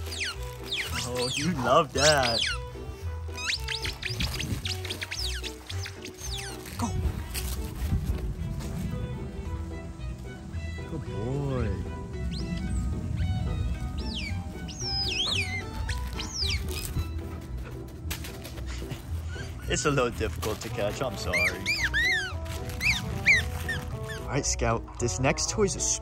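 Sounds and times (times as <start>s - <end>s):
squeaky dog toy squeaking: 0.0s - 6.8s, 14.0s - 17.3s, 21.1s - 24.4s
background music: 0.0s - 26.0s.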